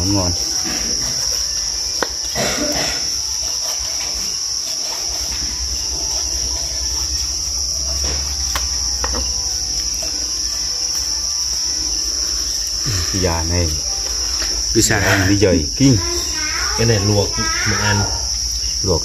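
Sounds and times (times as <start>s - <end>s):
crickets chirping: 0.0s - 19.0s.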